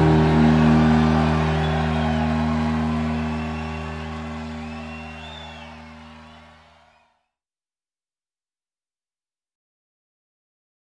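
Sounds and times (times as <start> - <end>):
rock band chord on bass and guitar: 0.0 - 6.1.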